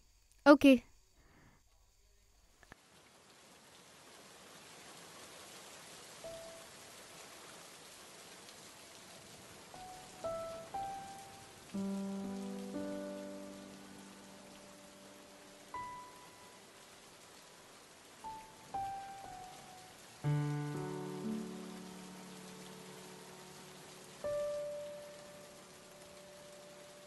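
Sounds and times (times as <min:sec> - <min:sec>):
steady rain falling: 0:02.5 - 0:27.0.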